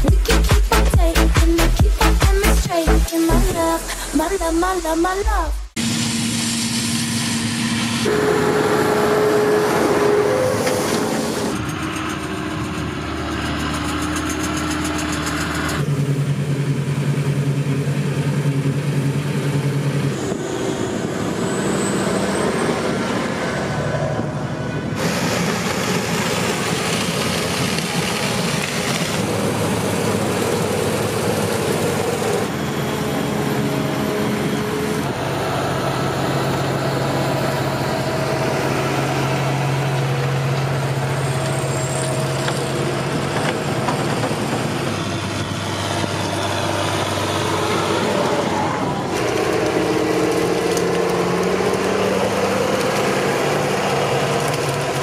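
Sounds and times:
farm machinery engine hum: 5.8 - 55.0.

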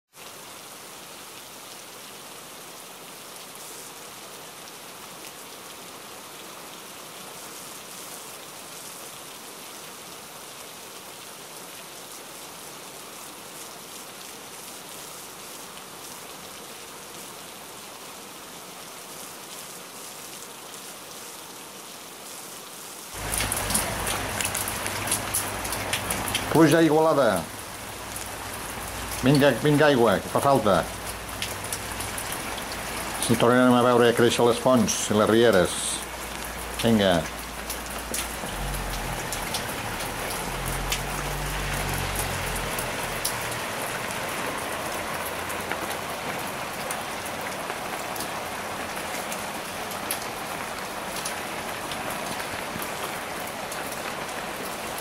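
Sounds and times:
steady rain hiss: 0.1 - 55.0
raindrops tapping hard surface: 23.2 - 46.9.

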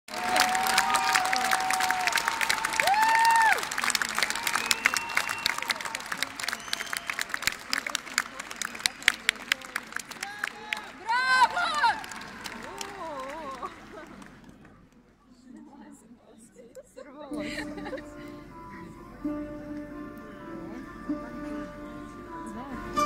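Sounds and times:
cheering shouts: 0.1 - 7.5, 10.2 - 13.6
audience applauding: 0.1 - 15.0.

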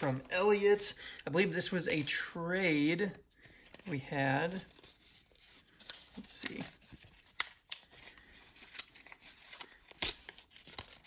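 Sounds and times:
paper envelope rustling: 3.5 - 11.0.

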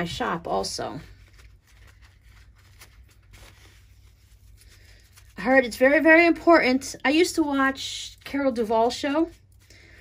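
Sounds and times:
paper towel rustling: 0.0 - 6.4
low steady hum: 0.0 - 10.0.

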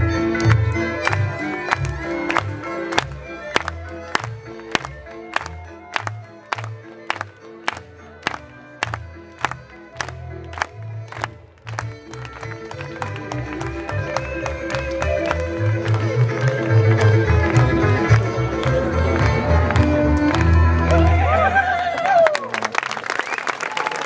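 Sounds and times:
folk band music: 0.0 - 21.6.

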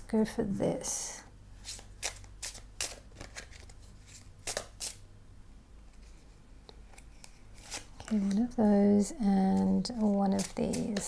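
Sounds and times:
cards being shuffled: 1.6 - 5.0, 5.9 - 8.8, 9.4 - 11.0.

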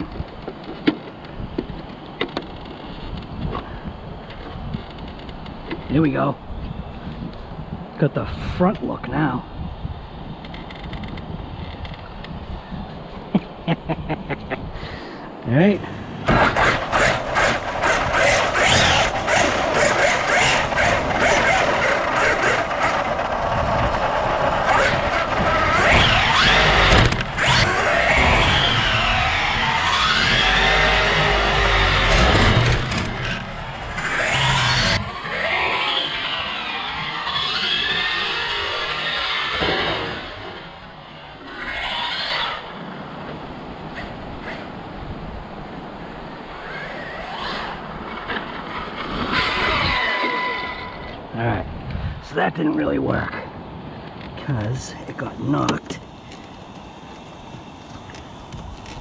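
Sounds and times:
tyres on dirt: 15.5 - 51.4, 54.0 - 59.0
electric motor whining: 15.8 - 42.8.

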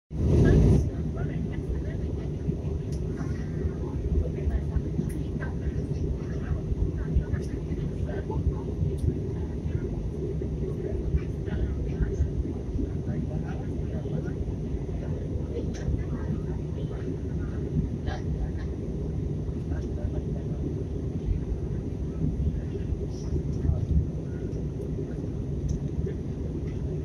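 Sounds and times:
airliner cabin roar: 0.1 - 27.0
faint passenger voices murmuring: 0.2 - 27.0.

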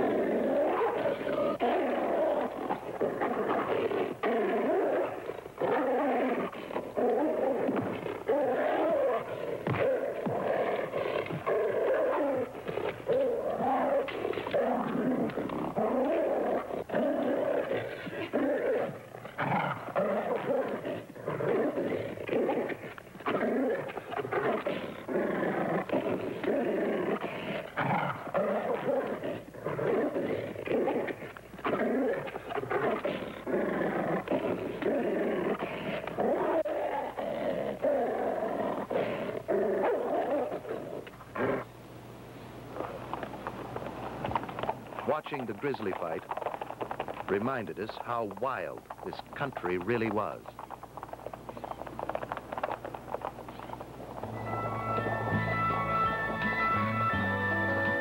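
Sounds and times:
bears growling while fighting: 0.0 - 41.7, 44.2 - 54.4.

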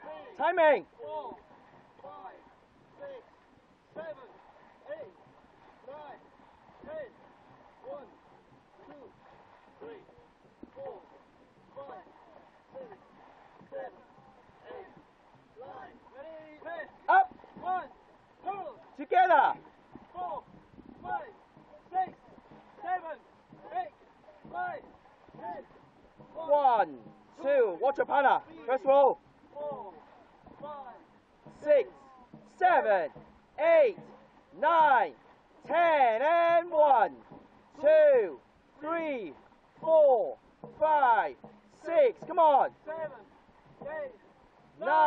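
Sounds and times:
paddle strokes: 0.0 - 45.0
water washing: 0.0 - 45.0
person giving rhythmic calls: 13.7 - 45.0.

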